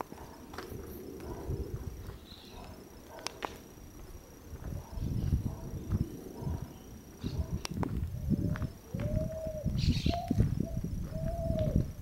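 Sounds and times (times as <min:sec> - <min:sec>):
dove cooing: 0:00.0 - 0:03.0, 0:04.3 - 0:12.0.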